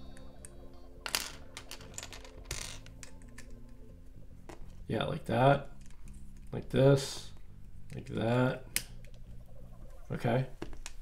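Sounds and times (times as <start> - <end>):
plastic bricks clicking: 1.1 - 3.8.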